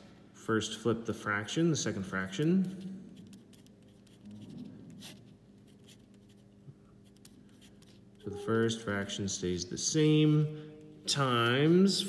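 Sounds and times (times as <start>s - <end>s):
pen scratching on paper: 3.2s - 8.3s.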